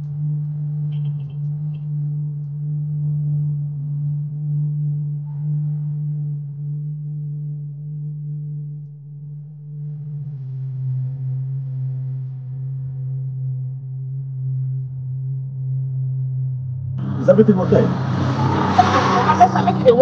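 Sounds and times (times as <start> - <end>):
low synthesizer drone: 0.0 - 20.0.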